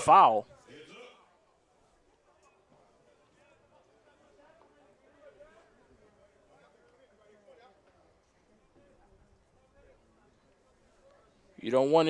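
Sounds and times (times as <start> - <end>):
faint distant voices: 0.0 - 12.0.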